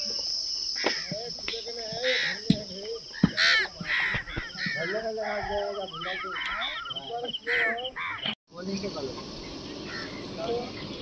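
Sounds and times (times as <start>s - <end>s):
high-pitched insect drone: 0.0s - 10.8s
crows cawing: 0.8s - 1.2s, 2.0s - 2.5s, 3.1s - 8.4s, 9.8s - 10.2s.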